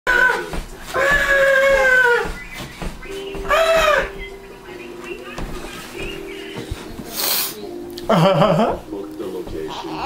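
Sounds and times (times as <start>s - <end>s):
baby squealing: 3.5s - 4.2s, 9.7s - 10.0s.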